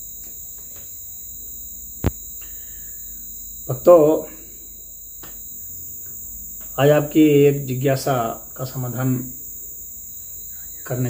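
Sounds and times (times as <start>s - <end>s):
high-pitched hiss: 0.0s - 11.0s
man speaking: 3.7s - 4.4s, 6.8s - 9.3s.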